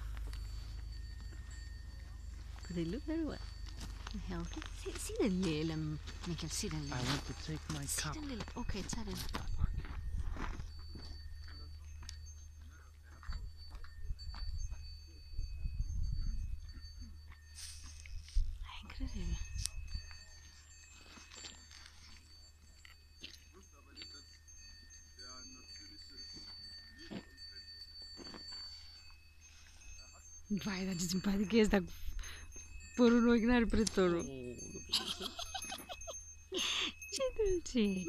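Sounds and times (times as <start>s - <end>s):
small bells ringing: 0.0s - 38.0s
wind rumble on microphone: 7.0s - 11.6s, 13.1s - 20.4s.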